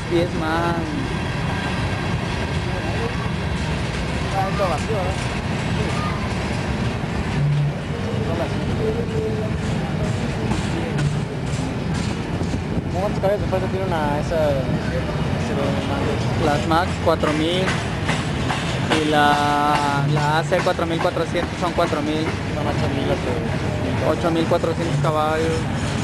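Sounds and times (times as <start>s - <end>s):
freight train wheels rumbling on rails: 0.0s - 26.0s.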